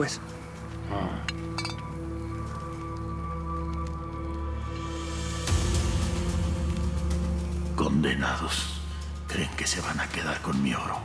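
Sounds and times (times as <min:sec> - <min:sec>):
background music: 0:00.0 - 0:11.0
glass bottles clinking: 0:01.2 - 0:02.2.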